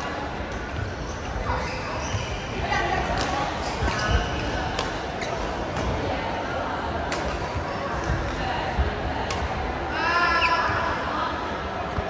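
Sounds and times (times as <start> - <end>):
rackets hitting shuttlecock: 2.8 - 6.1, 7.1 - 8.4.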